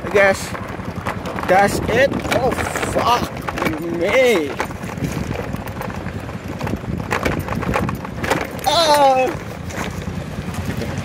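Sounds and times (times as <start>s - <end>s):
handling knocks and clicks: 0.0s - 11.0s
wind buffeting microphone: 0.0s - 11.0s.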